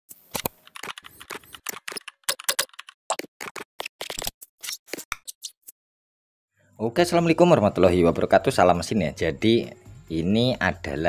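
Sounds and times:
computer keyboard typing: 0:00.4 - 0:04.2.

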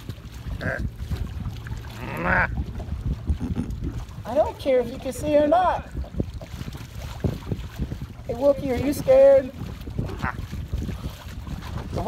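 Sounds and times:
boat engine low rumble: 0:00.0 - 0:12.0
wind on microphone: 0:00.0 - 0:12.0.

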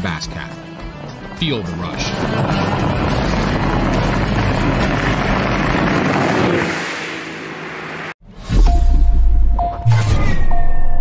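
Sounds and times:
background music: 0:00.0 - 0:05.8
outboard engine droning: 0:01.9 - 0:08.2
rush of wind and water: 0:05.6 - 0:08.1.

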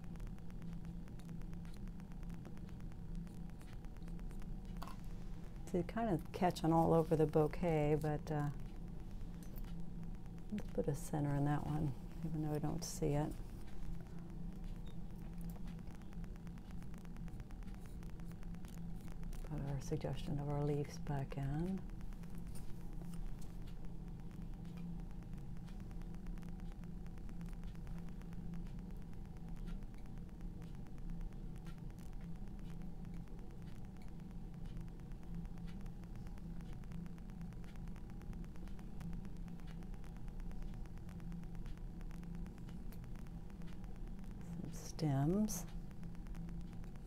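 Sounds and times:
low room hum: 0:00.0 - 0:47.0.

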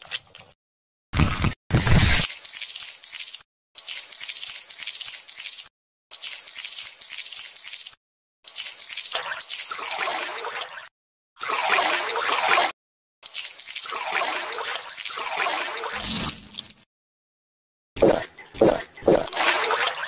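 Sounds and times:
wet squelching: 0:18.0 - 0:20.0.

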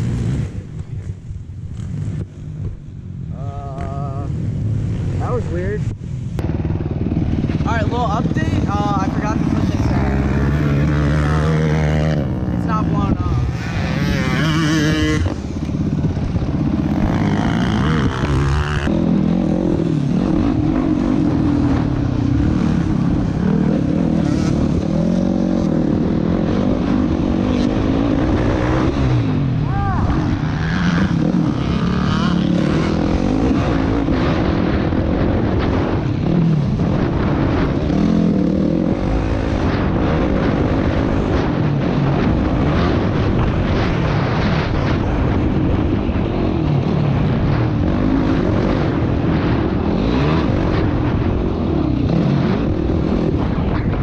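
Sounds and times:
quad engine revving: 0:06.6 - 0:43.7
person speaking: 0:07.6 - 0:10.8, 0:12.5 - 0:13.6.

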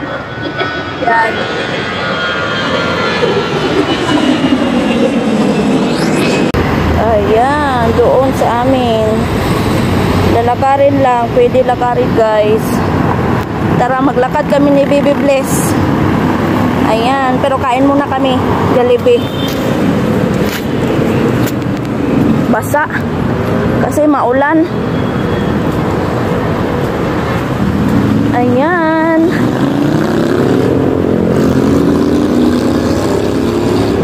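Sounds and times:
loud traffic noise: 0:00.0 - 0:34.0.

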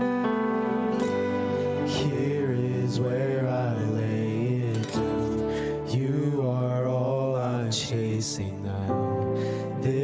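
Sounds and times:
acoustic guitar: 0:00.0 - 0:10.0
men singing a worship song: 0:01.9 - 0:10.0.

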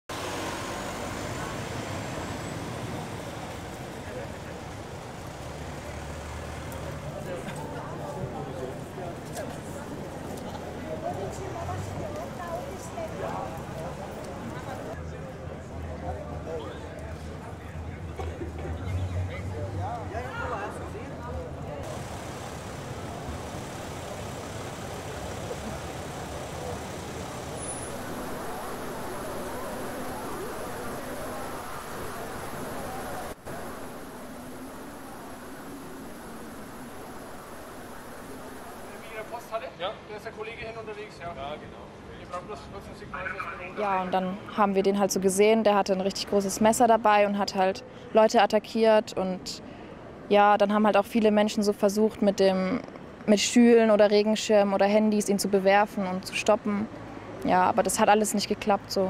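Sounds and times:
ambulance engine driving past: 0:00.1 - 0:15.0, 0:21.8 - 0:39.6
busy street rumble: 0:00.1 - 0:59.0.

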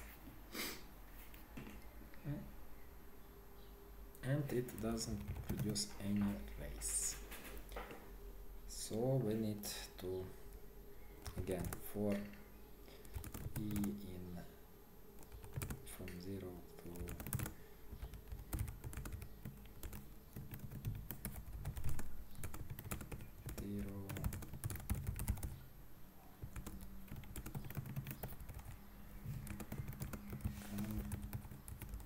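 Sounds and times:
computer keyboard typing: 0:04.6 - 0:06.3, 0:11.2 - 0:12.4, 0:13.0 - 0:14.0, 0:15.2 - 0:25.6, 0:26.4 - 0:32.0.

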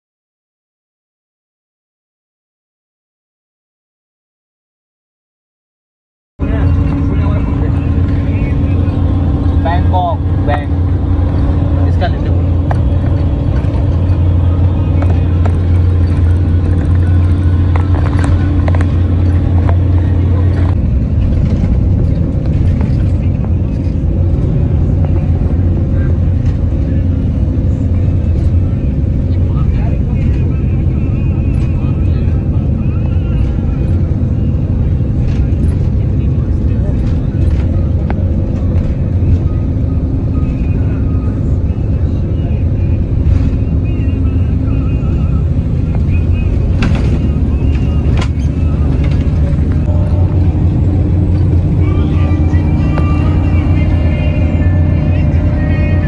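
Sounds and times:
bus engine and road drone: 0:06.4 - 0:56.0
indistinct voices: 0:06.4 - 0:56.0.

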